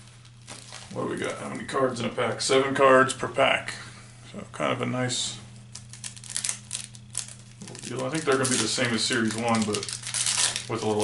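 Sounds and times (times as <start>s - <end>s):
foil wrapper tearing and crinkling: 0.2s - 1.4s, 5.7s - 11.0s.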